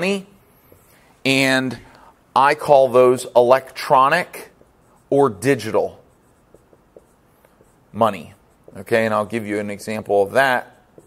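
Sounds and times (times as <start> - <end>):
marker writing on whiteboard: 2.5 - 11.0.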